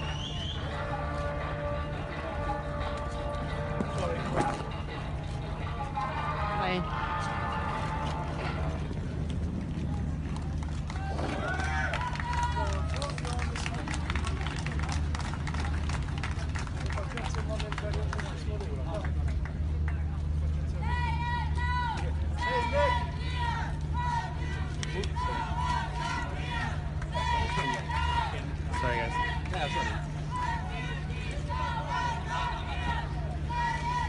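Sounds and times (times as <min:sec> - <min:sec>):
low engine hum: 0:00.0 - 0:34.0
people talking: 0:24.0 - 0:33.7.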